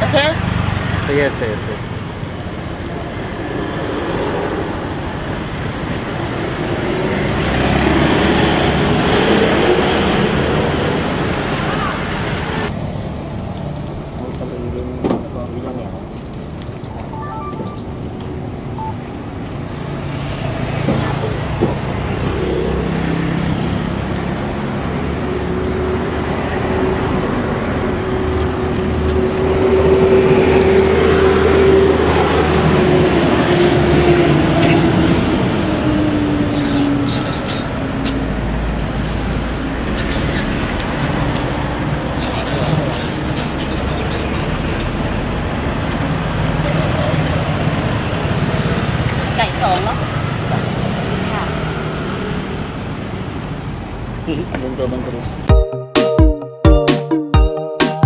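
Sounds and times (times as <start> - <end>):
scooters and cars passing: 0.0 - 55.5.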